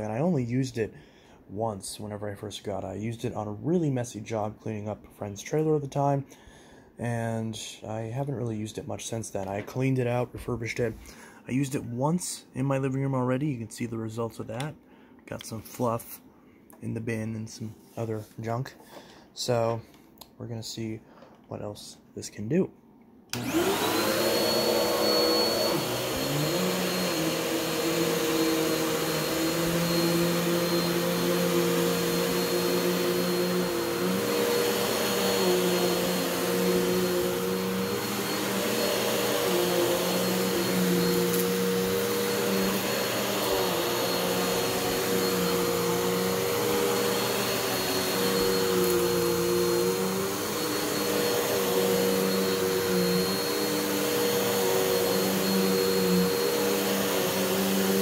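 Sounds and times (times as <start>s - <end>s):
vacuum cleaner running on carpet: 23.4s - 58.0s.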